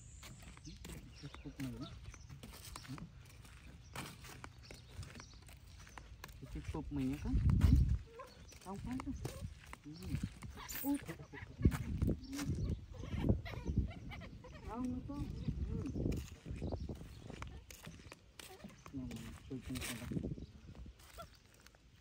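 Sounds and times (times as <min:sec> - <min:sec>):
footsteps on wooden boardwalk: 0:00.0 - 0:22.0
baby monkey squeaky calls: 0:07.7 - 0:19.4, 0:21.0 - 0:21.4.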